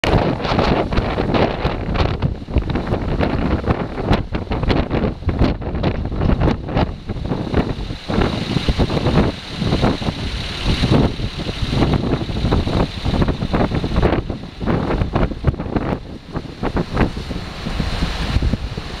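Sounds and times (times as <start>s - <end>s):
gusty wind buffeting microphone: 0.0s - 19.0s.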